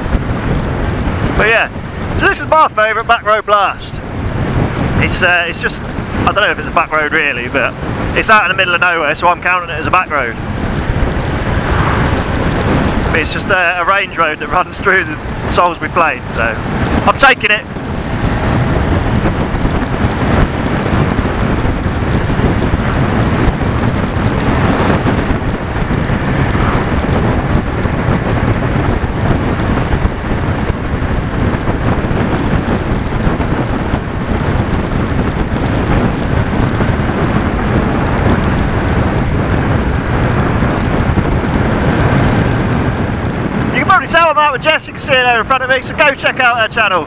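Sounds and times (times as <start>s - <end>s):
motorcycle engine running: 0.0s - 2.8s, 9.1s - 44.6s
wind rush over microphone: 0.0s - 47.0s.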